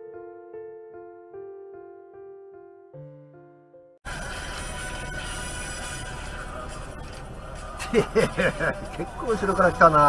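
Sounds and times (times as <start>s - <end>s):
man chuckling: 7.8s - 8.9s.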